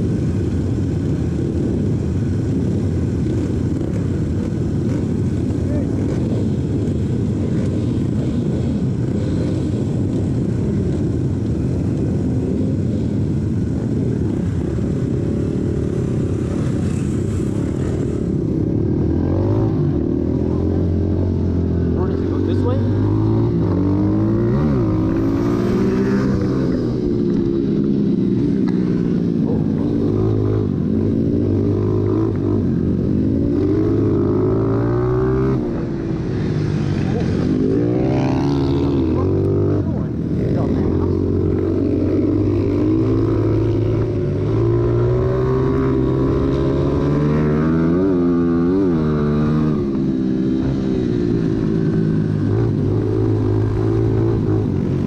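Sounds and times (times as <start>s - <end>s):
other motorcycles: 0.0s - 55.0s.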